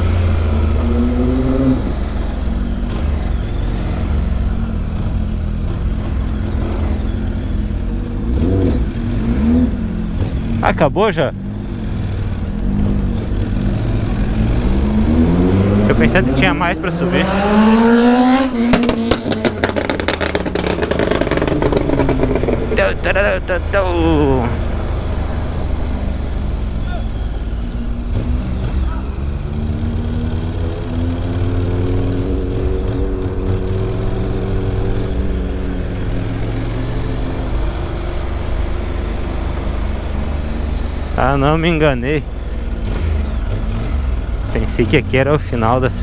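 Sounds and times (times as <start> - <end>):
motorcycle engine running: 0.0 - 46.0.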